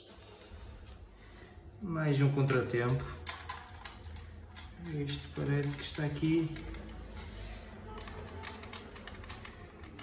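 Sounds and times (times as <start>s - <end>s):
plastic and metal parts clicking: 2.5s - 10.0s.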